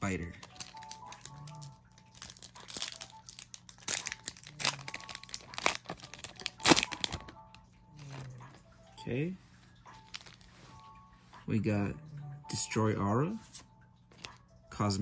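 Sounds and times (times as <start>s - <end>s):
foil wrapper crinkling: 0.3s - 8.3s, 10.0s - 10.8s.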